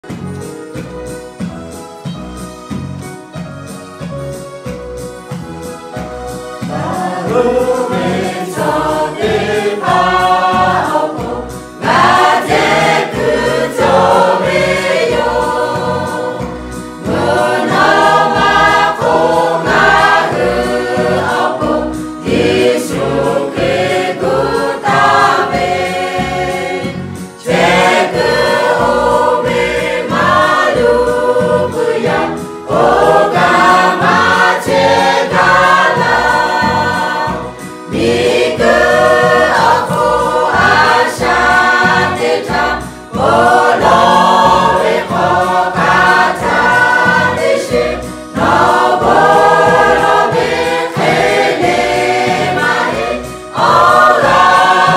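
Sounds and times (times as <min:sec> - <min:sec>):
mixed choir singing: 0:06.3 - 0:54.9.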